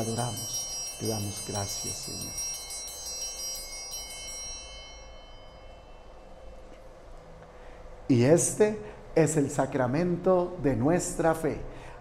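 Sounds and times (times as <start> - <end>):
altar bells ringing: 0.0 - 7.8.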